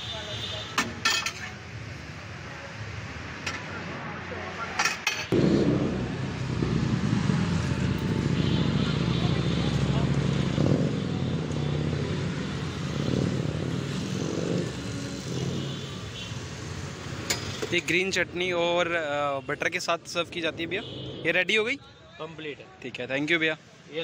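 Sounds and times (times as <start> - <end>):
vehicle engine revving: 5.3 - 15.8.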